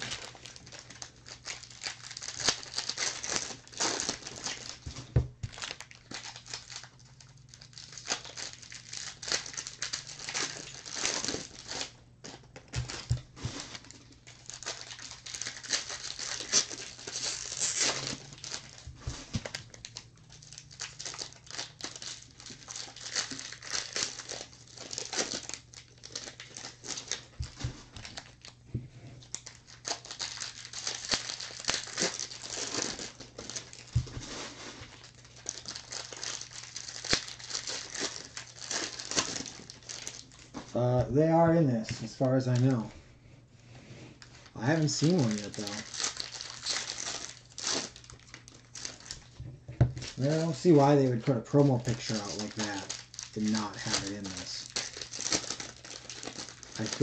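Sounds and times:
plastic wrapper crinkling and tearing: 0:00.0 - 0:42.9, 0:44.2 - 0:57.0.

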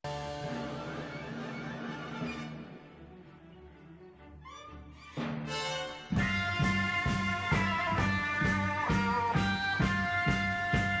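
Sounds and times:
symphony orchestra playing: 0:00.1 - 0:08.1.

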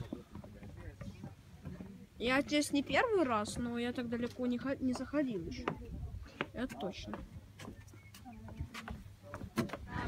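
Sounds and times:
faint low voices: 0:00.0 - 0:02.8
wind noise on microphone: 0:05.4 - 0:06.5, 0:08.4 - 0:10.0.

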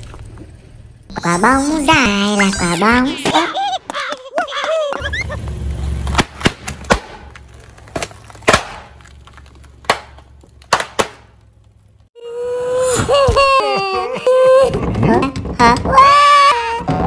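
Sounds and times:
car rumbling forward: 0:00.0 - 0:12.2.

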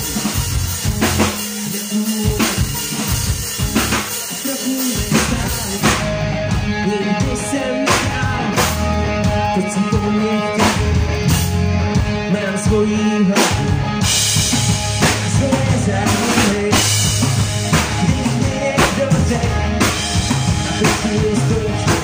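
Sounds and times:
rock band playing loudly: 0:00.0 - 0:22.0.

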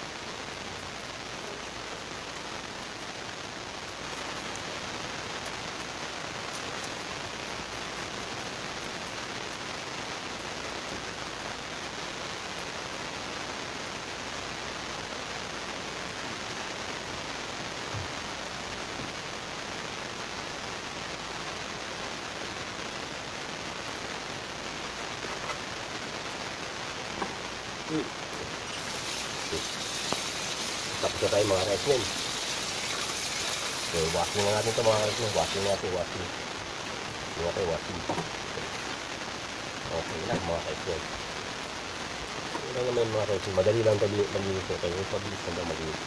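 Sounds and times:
steady rushing hiss: 0:00.0 - 0:46.0.

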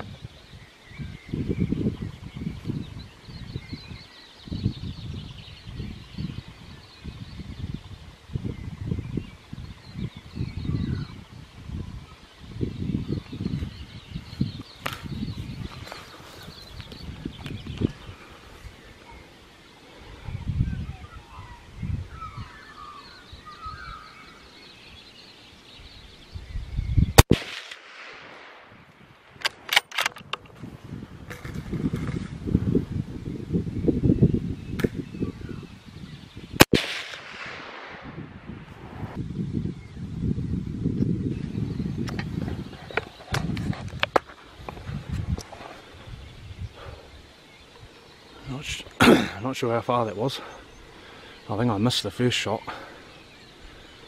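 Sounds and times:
wind buffeting microphone: 0:00.0 - 0:54.0
rifle shot: 0:27.2 - 0:28.8, 0:36.6 - 0:38.4.

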